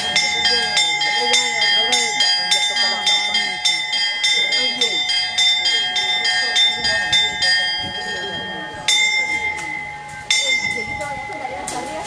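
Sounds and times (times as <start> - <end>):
small bell ringing: 0.0 - 12.0.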